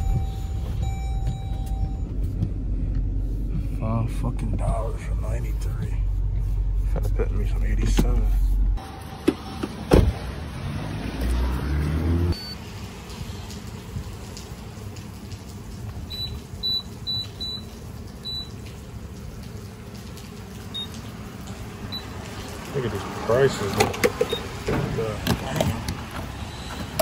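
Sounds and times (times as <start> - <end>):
keypad beeping: 16.1 - 17.6, 18.2 - 18.5.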